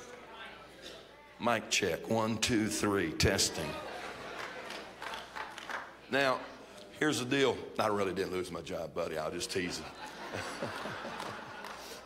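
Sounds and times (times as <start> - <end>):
faint audience murmur: 0.0 - 1.7, 3.6 - 7.2.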